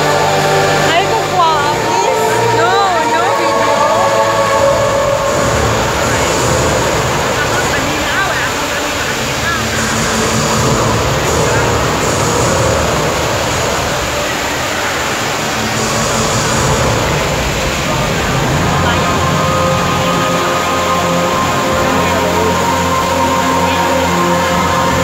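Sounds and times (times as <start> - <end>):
fountain water rushing: 0.0 - 25.0.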